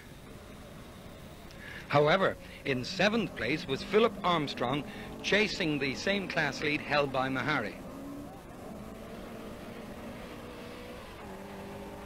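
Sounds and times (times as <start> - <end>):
rally car engines running: 0.0 - 12.0.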